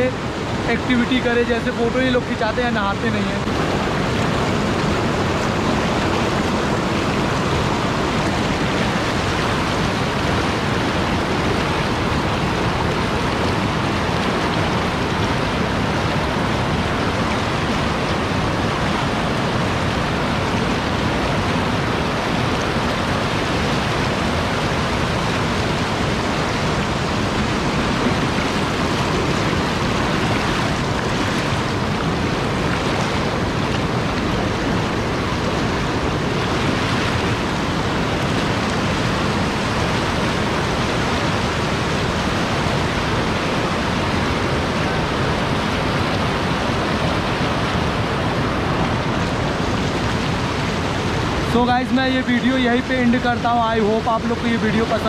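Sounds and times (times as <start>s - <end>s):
water rushing over boulders: 0.0s - 55.0s.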